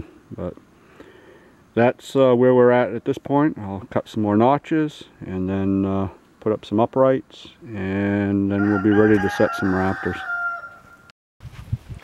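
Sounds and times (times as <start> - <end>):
rooster crowing: 8.5 - 11.1.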